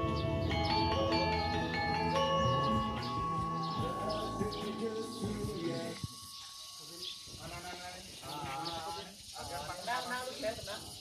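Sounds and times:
music playback: 0:00.0 - 0:06.5.

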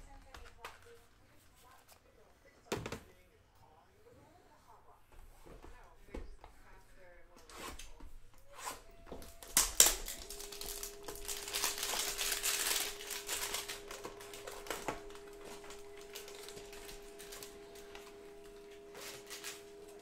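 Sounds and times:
plastic wrapper crinkling and tearing: 0:09.1 - 0:20.0.

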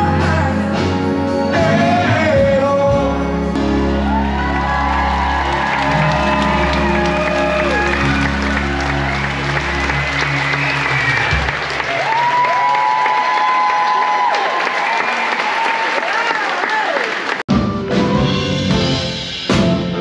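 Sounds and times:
audience cheering: 0:03.6 - 0:17.4
audience applauding: 0:03.8 - 0:17.5.

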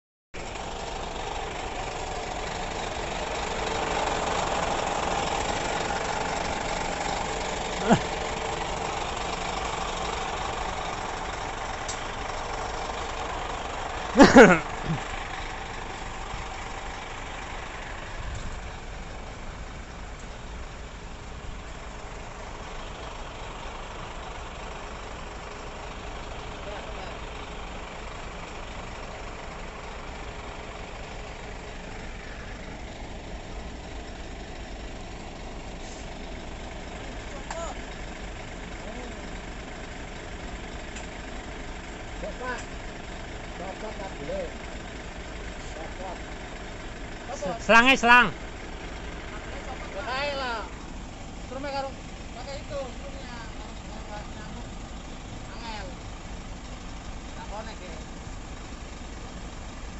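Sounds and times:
diesel truck engine idling: 0:00.4 - 0:59.9.

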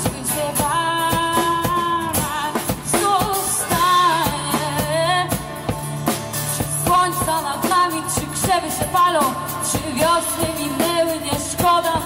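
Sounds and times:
acoustic guitar: 0:00.0 - 0:12.0
drum kit: 0:00.0 - 0:12.0
woman singing: 0:00.0 - 0:12.0.

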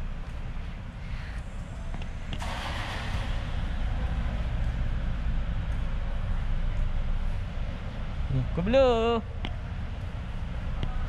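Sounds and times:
car passing in parking garage: 0:00.0 - 0:11.0
steady low rumble: 0:00.0 - 0:11.0.

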